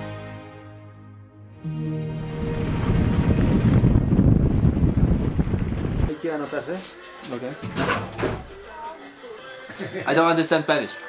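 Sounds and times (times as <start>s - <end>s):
background music: 0.0s - 4.6s, 5.9s - 11.0s
wind rush on microphone: 2.3s - 6.1s.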